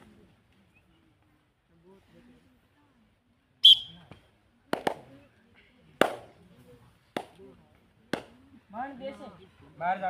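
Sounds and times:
short high whistle blast: 3.6s - 4.0s.

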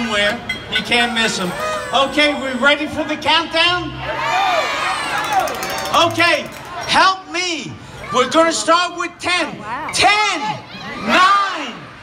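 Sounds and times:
crowd cheering and shouting: 0.1s - 12.0s.

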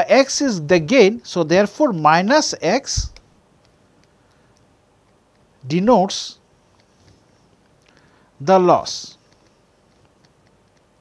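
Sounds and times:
person speaking: 0.0s - 3.3s, 5.6s - 6.9s, 8.4s - 9.6s
stylus tapping on pen tablet: 3.1s - 5.6s, 9.2s - 11.0s.

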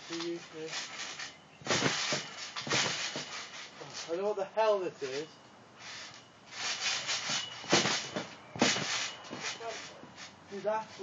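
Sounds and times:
rubbing scuffing noise: 4.9s - 11.0s.

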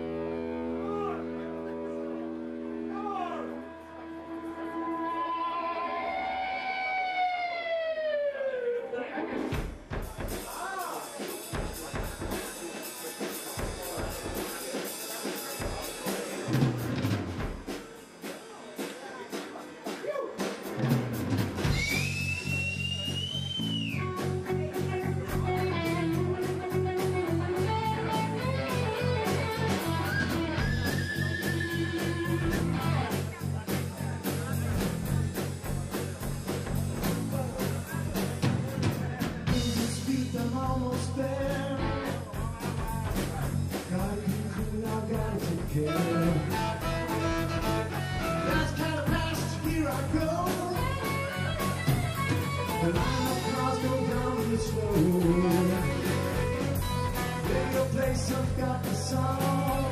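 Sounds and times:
bass guitar: 0.0s - 10.7s, 15.6s - 17.7s, 20.7s - 59.9s
electric guitar: 3.5s - 9.8s, 23.8s - 33.6s, 39.4s - 59.9s
drum kit playing: 9.4s - 59.9s.

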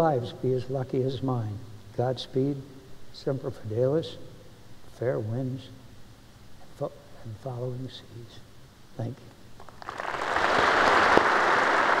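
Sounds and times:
audience applause: 9.7s - 12.0s.

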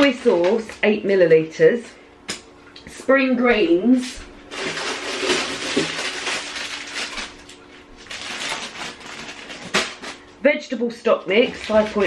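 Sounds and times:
plastic packaging crinkling: 0.0s - 0.9s, 4.5s - 10.3s, 11.3s - 12.0s.

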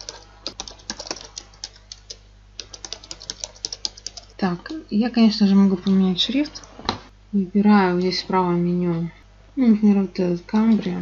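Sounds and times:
typing on computer keyboard: 0.0s - 4.4s.

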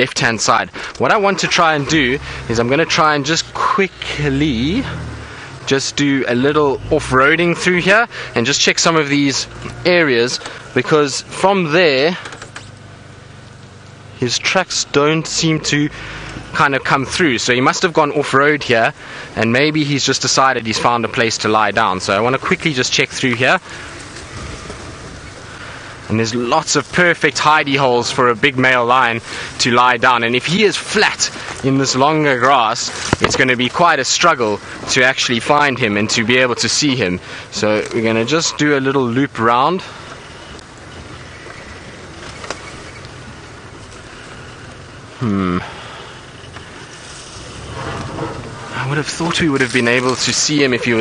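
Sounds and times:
steady rushing hiss: 0.0s - 51.0s
vehicle engine running: 0.0s - 51.0s.

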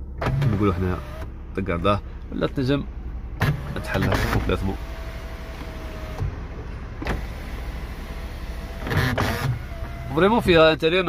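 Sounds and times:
low hum: 0.0s - 8.8s.

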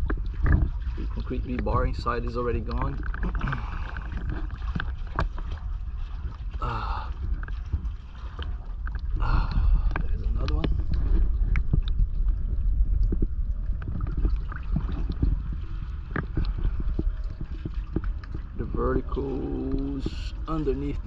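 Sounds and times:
small splashes and clicks: 0.0s - 21.0s
steady low rumble: 0.0s - 21.0s
water sloshing and lapping: 0.0s - 21.0s.

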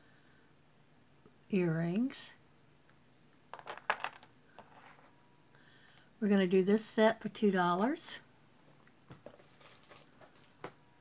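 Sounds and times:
earrings clinking on tabletop: 3.5s - 4.8s.

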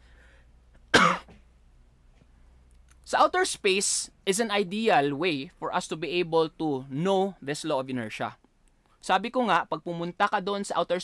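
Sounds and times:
man coughing: 0.9s - 1.4s.

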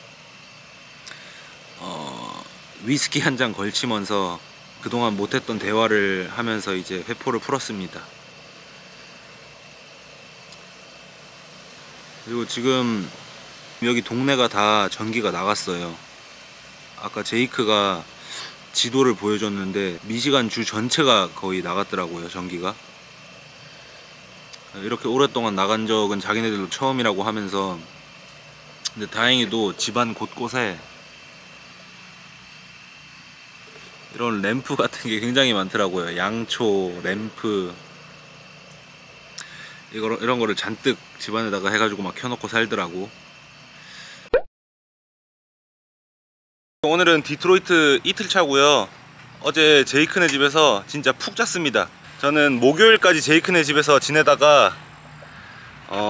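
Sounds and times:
faint background hum and hiss: 0.0s - 44.3s, 46.8s - 56.0s
faint high-pitched whine: 0.0s - 44.3s, 46.8s - 56.0s.

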